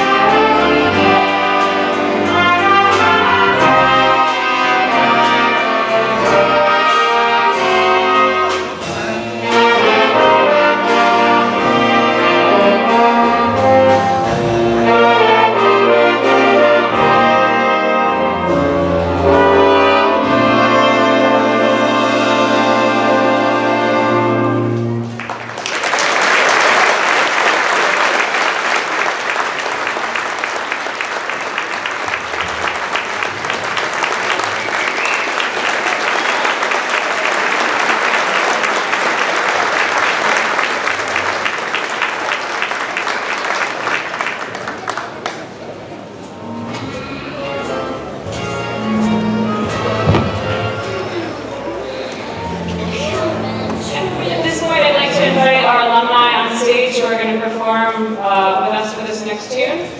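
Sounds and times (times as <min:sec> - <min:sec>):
school band with brass: 0:00.0 - 0:59.9
audience applause: 0:25.0 - 0:46.2.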